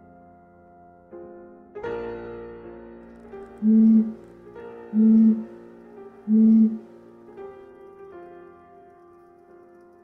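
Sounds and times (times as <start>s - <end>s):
blowing across a bottle: 3.6s - 4.2s, 4.9s - 5.5s, 6.2s - 6.8s.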